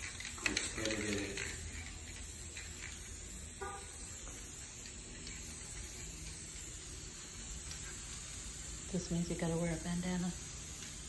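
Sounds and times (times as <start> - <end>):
spray paint can hissing: 0.0 - 11.0.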